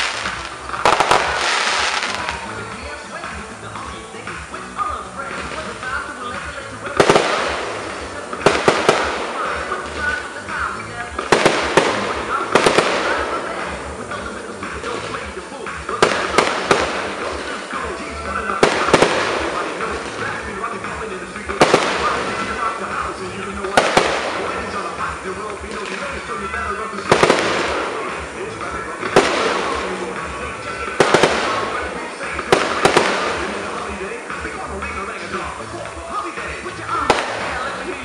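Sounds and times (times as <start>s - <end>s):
firework shells bursting: 0.0s - 2.6s, 5.4s - 26.4s, 27.0s - 34.4s, 36.6s - 37.9s.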